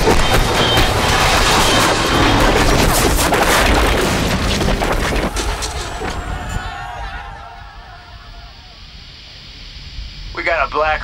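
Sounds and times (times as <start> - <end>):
helicopter crashing and skidding: 0.0 - 6.6
scraping debris: 0.0 - 6.6.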